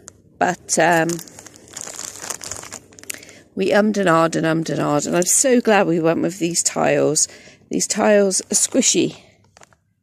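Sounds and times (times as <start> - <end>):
rustling crackling noise: 0.0 - 3.4, 8.5 - 9.8
person speaking: 0.0 - 7.1, 7.8 - 9.2.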